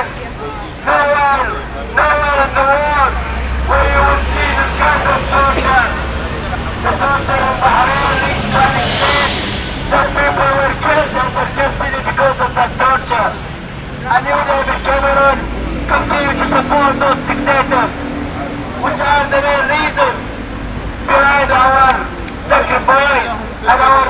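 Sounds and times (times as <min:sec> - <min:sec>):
man shouting through megaphone: 0:00.0 - 0:20.3, 0:21.0 - 0:24.0
low traffic rumble: 0:00.0 - 0:24.0.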